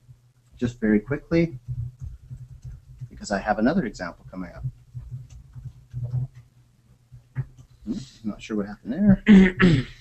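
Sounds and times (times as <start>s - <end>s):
man speaking: 0.6s - 1.7s, 3.0s - 4.7s, 7.9s - 9.6s.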